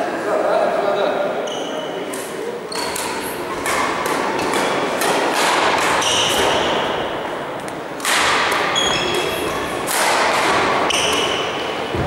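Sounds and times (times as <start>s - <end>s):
rackets hitting shuttlecock: 2.1s - 12.0s.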